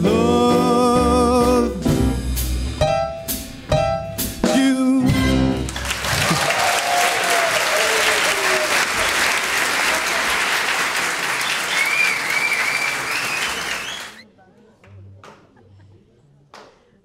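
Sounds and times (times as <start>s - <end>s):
audience applauding: 5.6s - 14.2s.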